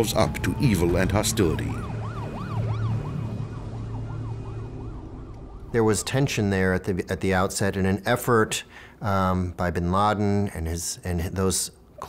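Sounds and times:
ambulance siren wailing: 0:00.0 - 0:06.9
low traffic hum: 0:00.0 - 0:09.0.

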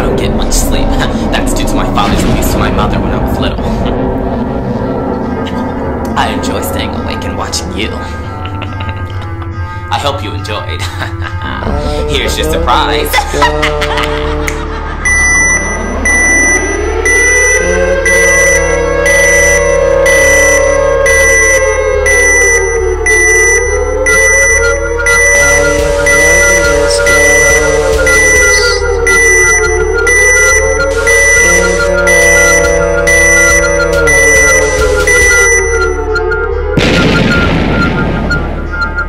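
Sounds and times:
pulsing low beat: 0:11.4 - 0:39.0
siren-like wail: 0:15.0 - 0:39.0
high beep: 0:15.1 - 0:39.0.

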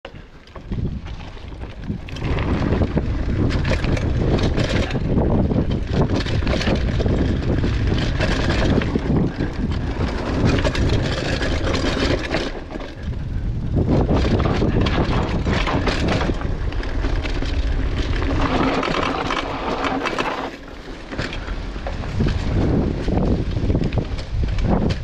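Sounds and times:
bike tyres rumbling on dirt: 0:00.1 - 0:25.0
wind rushing over microphone: 0:00.6 - 0:25.0.

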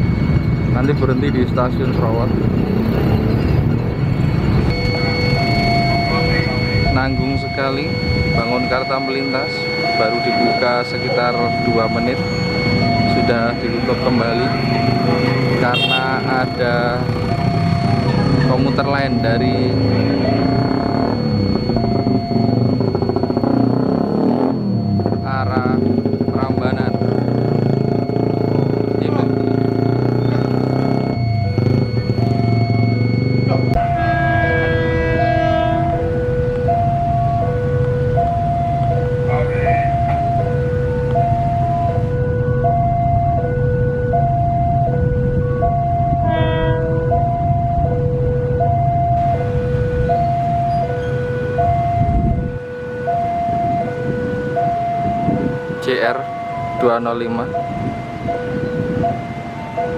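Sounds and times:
road traffic engines: 0:00.0 - 0:59.9.

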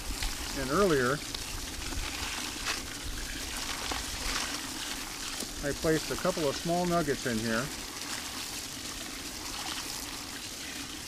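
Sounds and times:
water running onto gravel: 0:00.0 - 0:11.0.

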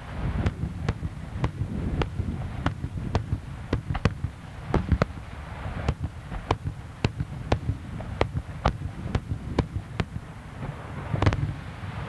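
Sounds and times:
fireworks bangs: 0:00.0 - 0:12.0.

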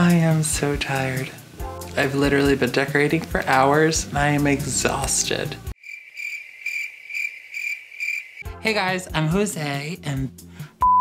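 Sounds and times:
crickets chirping: 0:05.8 - 0:08.5.

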